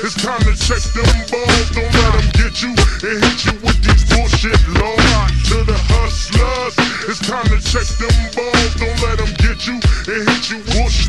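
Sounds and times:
slowed rap vocals: 0.0s - 11.0s.

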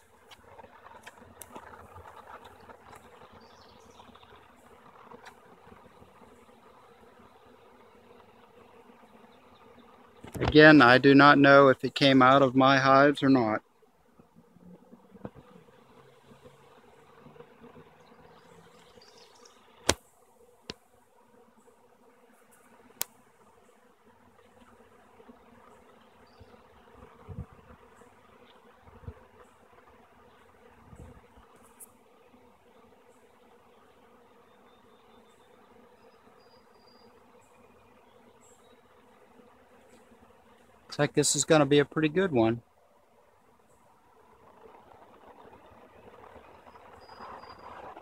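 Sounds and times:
bees buzzing: 0.0s - 48.0s.

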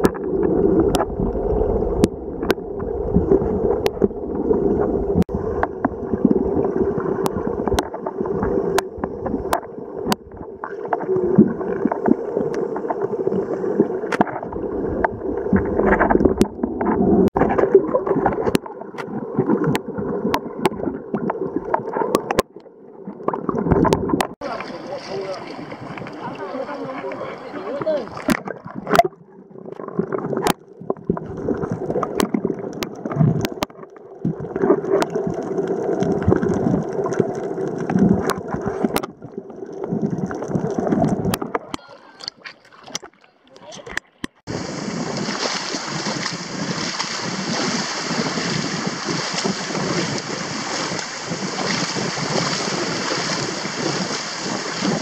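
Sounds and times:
muffled underwater gurgling: 0.0s - 55.0s
water and air noise: 0.0s - 55.0s.

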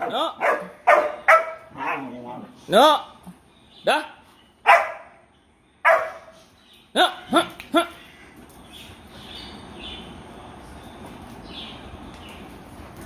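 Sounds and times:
dogs barking: 0.0s - 2.3s, 4.6s - 5.2s, 5.8s - 6.4s.

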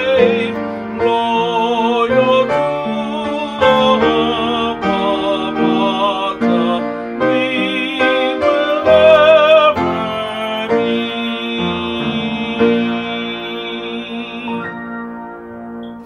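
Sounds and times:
man singing with vibrato: 0.0s - 15.0s
upright piano: 0.0s - 16.0s.

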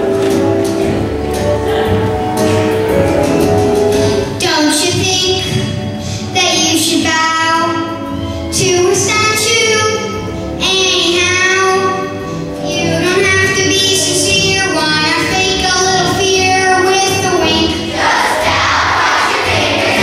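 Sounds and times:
musical accompaniment: 0.0s - 20.0s.

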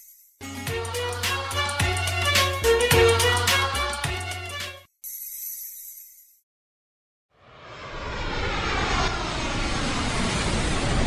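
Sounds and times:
jet aircraft flying over: 7.4s - 11.0s.

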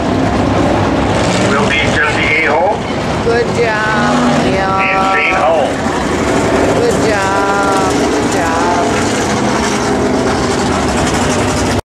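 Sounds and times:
race car engines running: 0.0s - 11.8s
announcer over public address: 1.5s - 5.9s, 6.8s - 9.1s.

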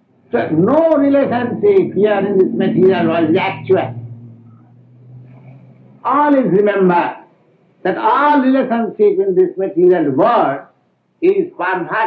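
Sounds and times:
faint indistinct sounds: 0.0s - 7.9s
steady low hum: 0.0s - 12.0s.

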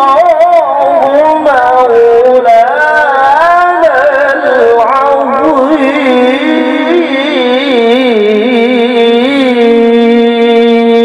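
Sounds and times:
man reciting melodically: 0.0s - 11.0s.

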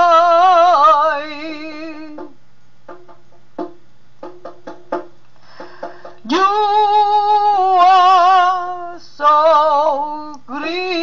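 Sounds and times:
woman singing with vibrato: 0.0s - 2.4s, 6.2s - 11.0s.

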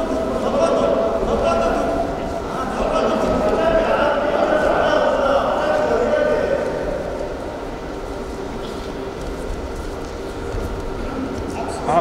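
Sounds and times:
low rumble and hum of hall: 0.0s - 12.0s.

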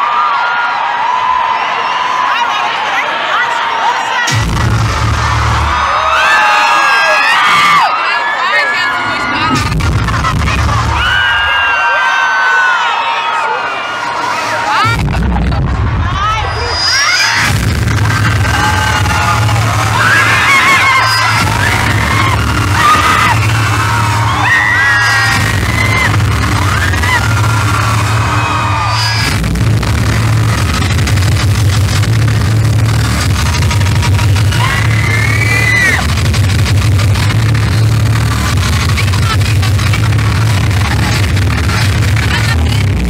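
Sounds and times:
loud concert music with heavy bass: 2.3s - 43.0s
high voices shouting and whooping: 16.0s - 29.3s, 34.3s - 36.0s.

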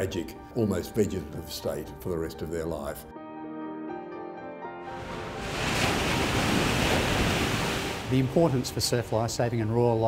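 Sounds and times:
ocean waves breaking: 4.9s - 9.5s.

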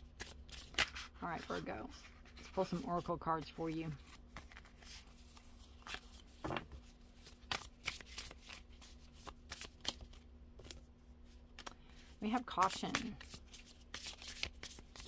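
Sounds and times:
faint steady hum: 0.0s - 15.0s
cards being shuffled: 0.1s - 15.0s.

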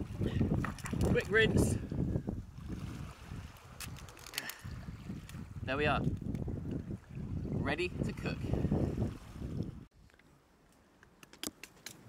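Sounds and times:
seawater lapping on rocks: 0.0s - 1.6s, 2.4s - 5.6s
water splashes: 0.0s - 1.8s, 2.4s - 5.6s
wind rumble on microphone: 0.0s - 10.0s.

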